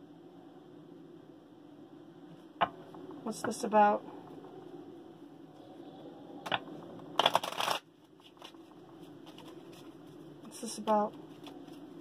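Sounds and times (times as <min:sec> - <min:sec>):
cards shuffling: 0:07.2 - 0:10.0.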